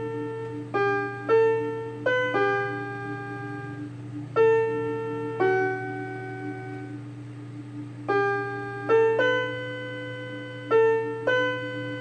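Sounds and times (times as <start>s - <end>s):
electronic keyboard piano chords: 0.0s - 12.0s
held low keyboard note: 0.0s - 12.0s.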